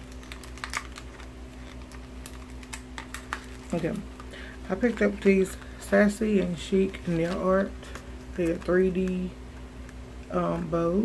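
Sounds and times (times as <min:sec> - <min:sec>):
packaged items clicking and tapping: 0:00.0 - 0:05.6
steady electrical hum: 0:00.0 - 0:11.0.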